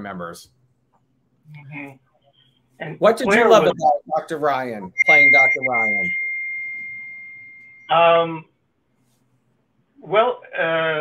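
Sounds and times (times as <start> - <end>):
high-pitched ringing tone: 4.9 - 8.0.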